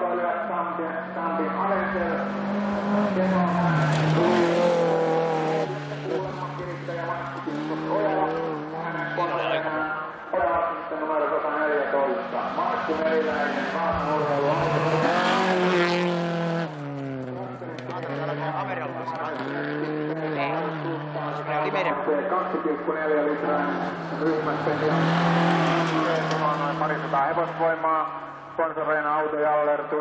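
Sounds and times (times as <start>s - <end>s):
rally car engines revving: 0.0s - 30.0s.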